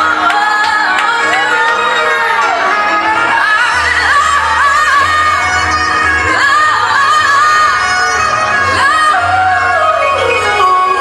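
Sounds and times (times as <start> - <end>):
person singing long sliding notes: 0.0 - 11.0
pop backing track with bass: 0.0 - 11.0.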